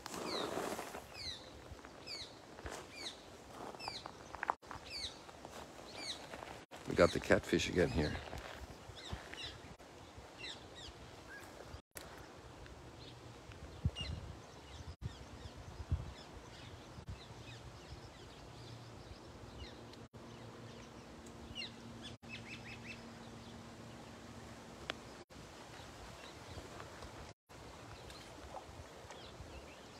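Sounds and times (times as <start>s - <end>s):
birds chirping: 0.2s - 27.3s.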